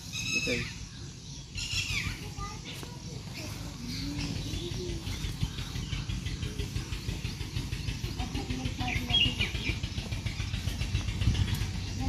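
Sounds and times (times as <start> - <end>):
birds chirping faintly: 0.0 - 12.0
steady low rumble: 0.7 - 12.0
faint voices: 2.0 - 12.0.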